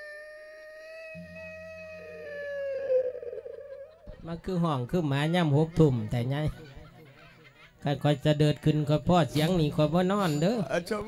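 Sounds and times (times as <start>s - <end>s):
person singing long high note: 0.0s - 4.0s.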